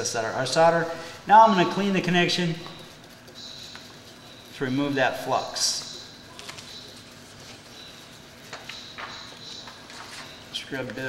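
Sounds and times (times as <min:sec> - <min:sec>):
tissue rustling and crinkling: 0:06.2 - 0:09.1.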